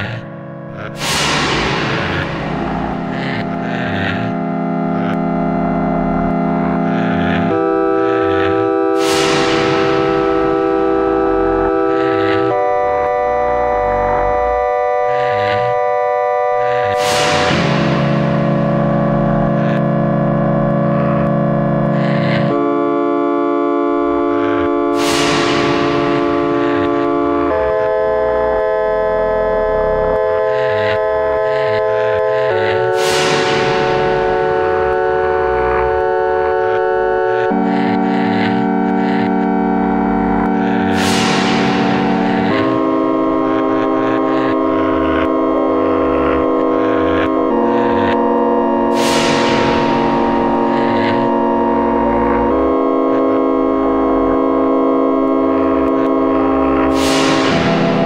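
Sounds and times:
low rumble: 0.0s - 7.9s, 8.8s - 14.5s
sustained synthesized chords: 0.0s - 58.0s.

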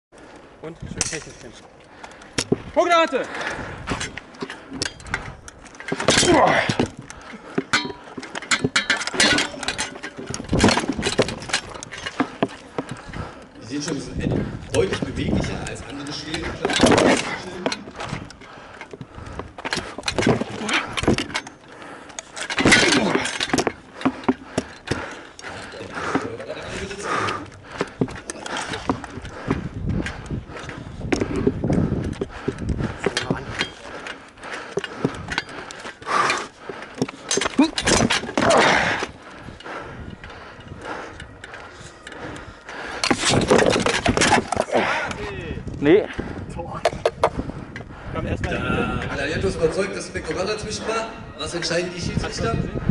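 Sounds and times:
voices talking and calling out: 0.5s - 52.9s
armour and shield clattering: 1.0s - 45.2s.

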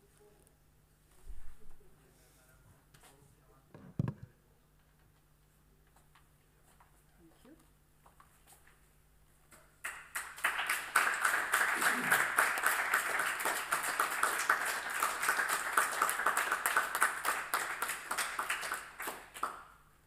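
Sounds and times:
small audience applauding: 9.8s - 20.0s.

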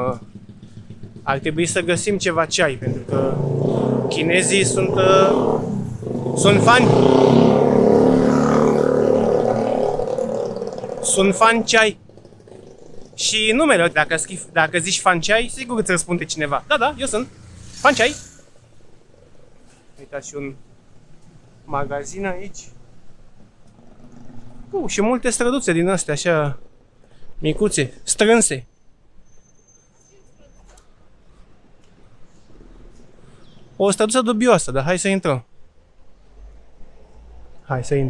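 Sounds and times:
man speaking: 1.3s - 5.6s, 6.3s - 7.1s, 11.0s - 12.0s, 13.2s - 18.2s
car driving past: 2.9s - 11.2s, 16.2s - 19.9s.

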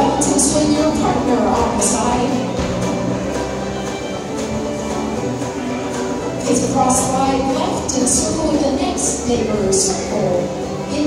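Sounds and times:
live folk dance band playing: 0.0s - 11.0s.

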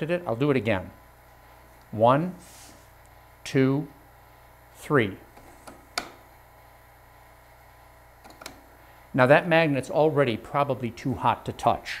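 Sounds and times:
faint low electrical hum: 0.0s - 12.0s
switch click: 5.3s - 6.2s, 8.2s - 8.6s.

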